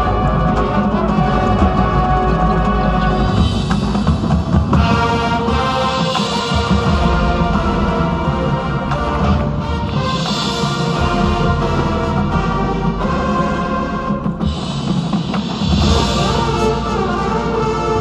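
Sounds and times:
brass and woodwind chords: 0:00.0 - 0:18.0
timpani: 0:00.0 - 0:18.0.

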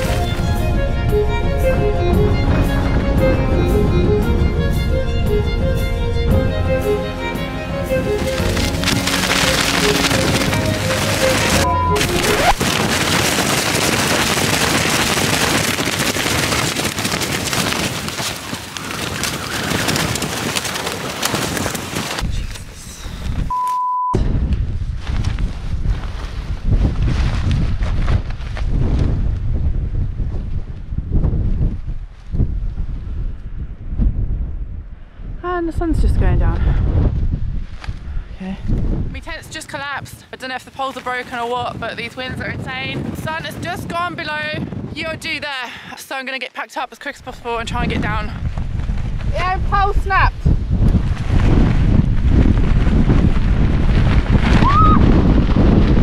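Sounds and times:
music: 0:00.0 - 0:12.6
gusting wind on microphone: 0:00.0 - 0:46.3, 0:47.0 - 0:56.0
short beep: 0:11.6 - 0:12.6, 0:23.5 - 0:24.2.

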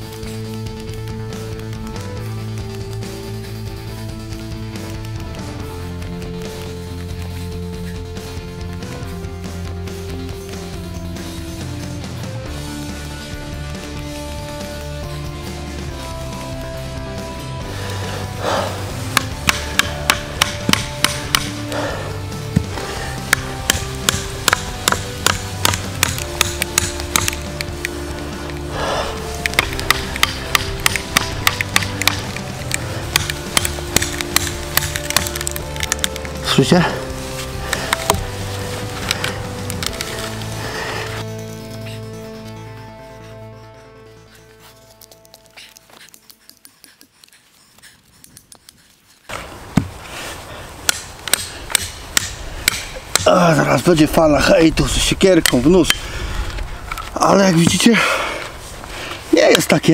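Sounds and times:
background music: 0:00.0 - 0:47.3, 0:49.3 - 0:59.9
knife chopping into wood: 0:19.1 - 0:21.6, 0:22.6 - 0:27.6, 0:29.4 - 0:36.2.

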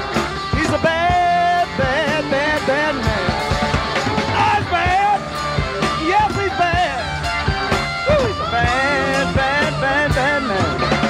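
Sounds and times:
electric guitar lead bending notes: 0:00.0 - 0:11.0
live rock band playing: 0:00.0 - 0:11.0.

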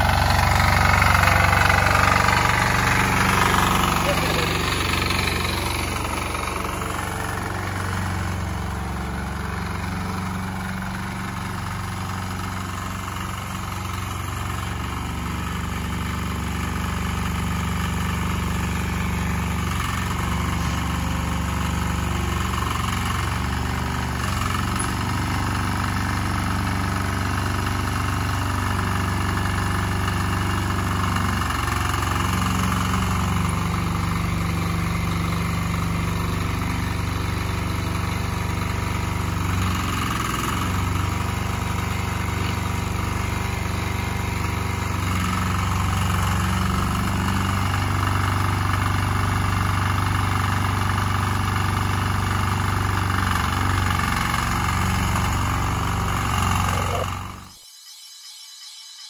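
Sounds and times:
tractor engine running: 0:00.0 - 0:57.6.

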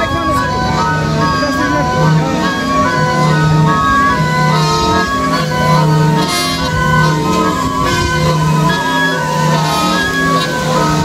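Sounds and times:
end-blown pipes ensemble: 0:00.0 - 0:11.0.

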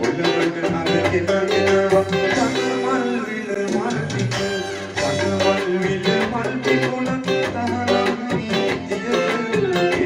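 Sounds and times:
backing track bass and drums: 0:00.0 - 0:10.0
electric guitar melody: 0:00.0 - 0:10.0.

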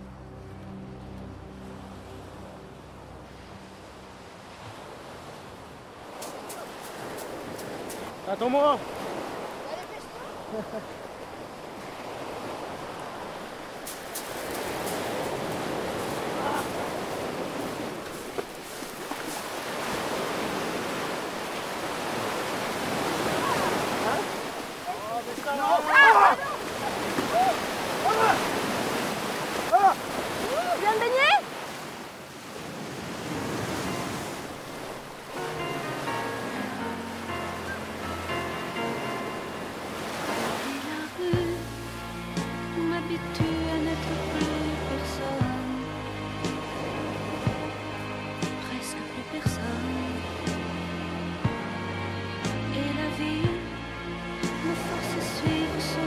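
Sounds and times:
sea surf washing ashore: 0:00.0 - 0:56.0
person squealing: 0:29.7 - 0:30.8
soft music with held notes: 0:35.3 - 0:56.0.

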